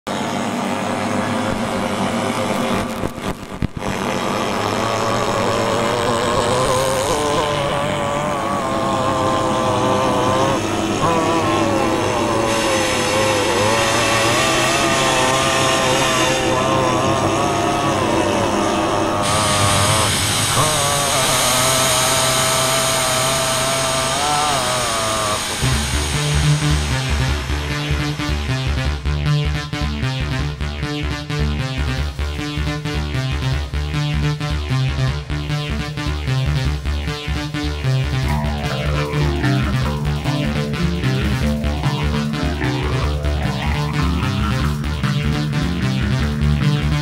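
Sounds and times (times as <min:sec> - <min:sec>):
low hum: 0:00.1 - 0:47.0
wavering sliding tones: 0:08.5 - 0:29.0, 0:38.2 - 0:46.8
steady hiss: 0:18.4 - 0:28.8.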